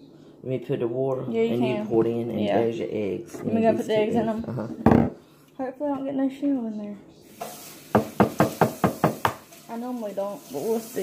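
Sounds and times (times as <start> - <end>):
egg knocked against hard surface: 7.9 - 9.4.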